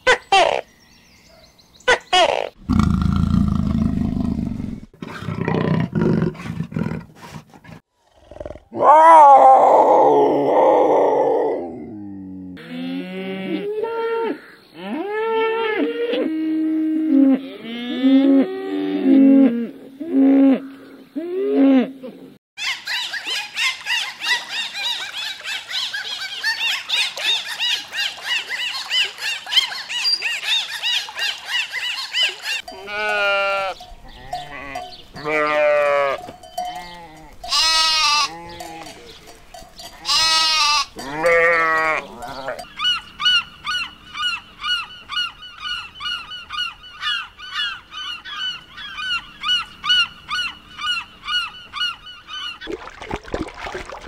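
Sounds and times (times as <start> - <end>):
repeated animal call: 8.1 - 23.8, 31.8 - 52.6
dolphins chirping and whistling: 22.6 - 32.7
sheep bleating: 32.7 - 39.1, 39.9 - 42.6.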